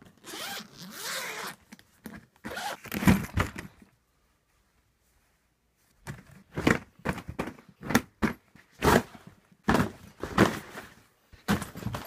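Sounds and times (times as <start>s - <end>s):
suitcase zipper rasp: 0.2s - 1.6s, 2.5s - 2.9s.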